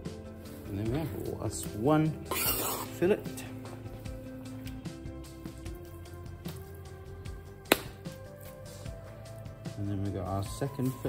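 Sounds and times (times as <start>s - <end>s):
background music with sustained notes: 0.0s - 11.0s.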